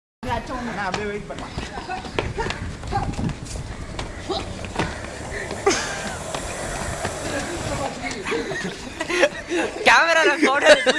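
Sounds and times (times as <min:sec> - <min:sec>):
footfalls on brick paving: 0:00.3 - 0:09.5
voices: 0:00.6 - 0:10.9
sharp impacts: 0:03.3 - 0:08.6.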